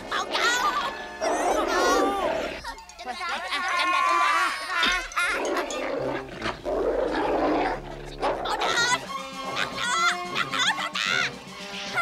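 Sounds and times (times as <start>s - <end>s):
cartoon dog growling and barking: 0.0s - 2.6s, 3.6s - 11.3s
background music: 0.0s - 12.0s.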